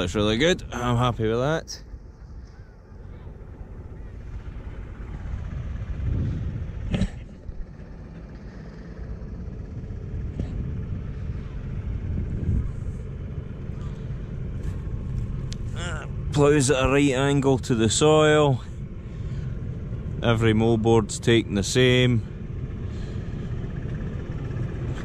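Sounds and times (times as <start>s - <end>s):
tractor engine rumbling under load: 0.0s - 25.0s.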